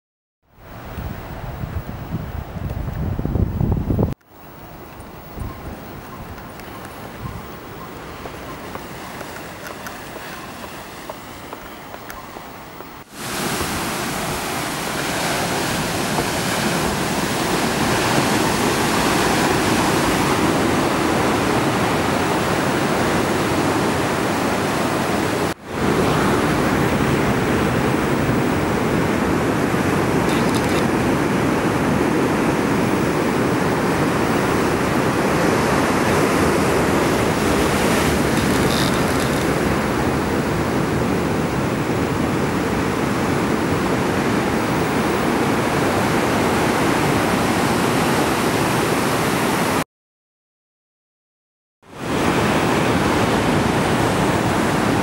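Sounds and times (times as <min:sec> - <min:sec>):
surf breaking over rocks: 0:13.0 - 0:31.2, 0:33.9 - 0:42.8.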